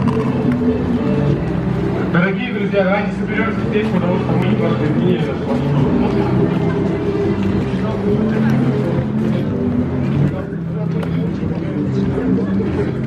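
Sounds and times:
people chatting: 2.1s - 13.0s.

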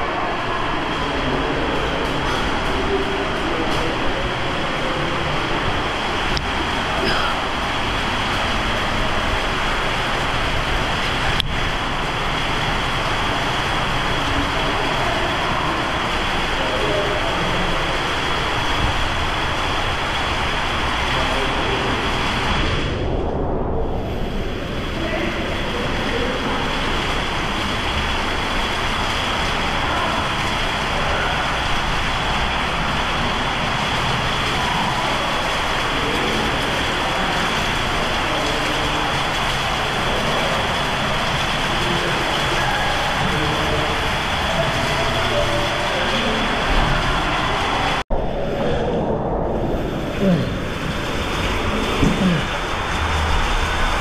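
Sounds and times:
faint echoing voices: 0.0s - 54.0s
rushing water din: 0.0s - 54.0s.

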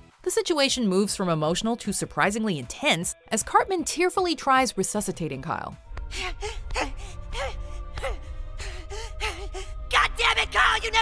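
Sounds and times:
soft dramatic music: 0.0s - 11.0s
boy gasping and sobbing: 6.0s - 9.9s.

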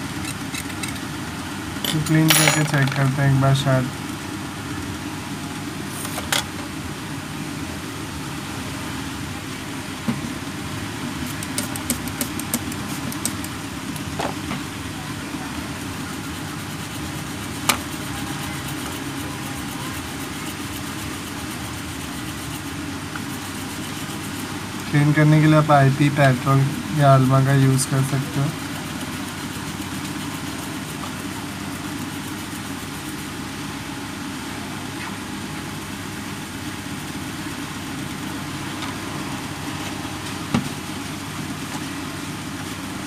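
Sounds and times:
background hum and hiss: 0.0s - 43.0s.

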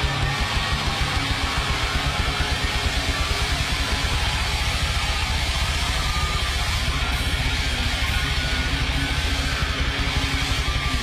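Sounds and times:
distorted electric guitars: 0.0s - 11.0s
fast kick-drum beats: 0.0s - 11.0s.

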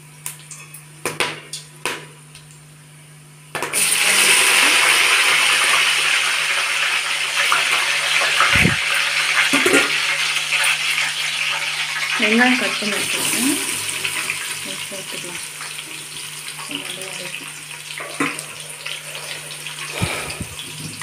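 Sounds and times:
hot oil sizzling loudly: 3.6s - 21.0s.

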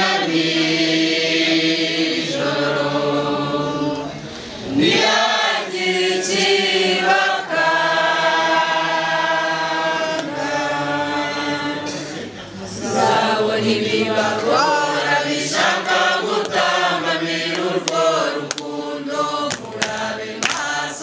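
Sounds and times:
group of voices singing: 0.0s - 21.0s.

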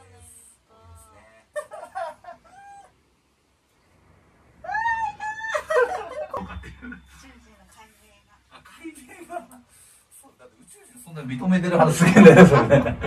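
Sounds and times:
woman crying out: 4.7s - 6.3s.

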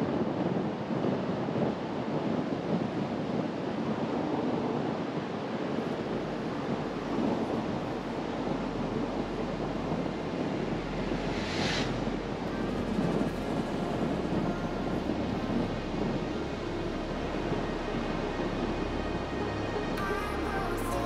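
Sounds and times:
wind rushing over microphone: 0.0s - 21.0s.

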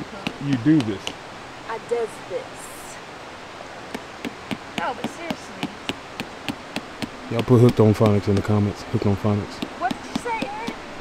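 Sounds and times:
rock pounding tent stake: 3.9s - 8.6s.

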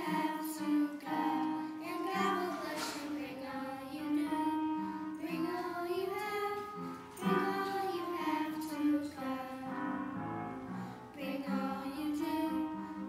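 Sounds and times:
children singing together: 0.0s - 13.0s.

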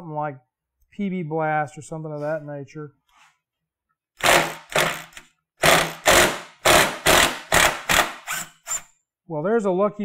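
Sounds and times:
impact driver hammering on screw: 4.2s - 8.8s.

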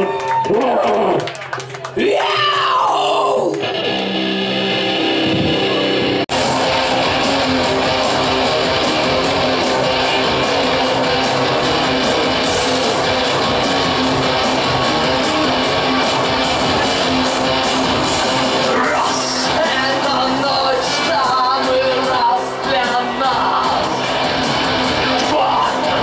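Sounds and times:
heavy distorted electric guitars: 2.0s - 26.0s
live metal band playing: 3.5s - 26.0s.

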